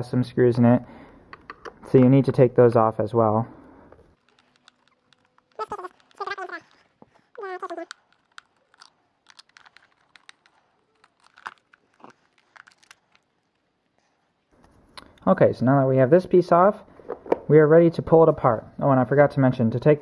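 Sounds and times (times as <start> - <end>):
person speaking: 4.2 - 12.9.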